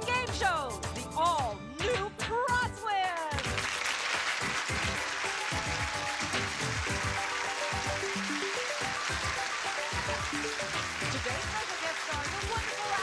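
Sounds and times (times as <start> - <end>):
game show theme music: 0.0 - 13.0
audience applause: 3.4 - 13.0.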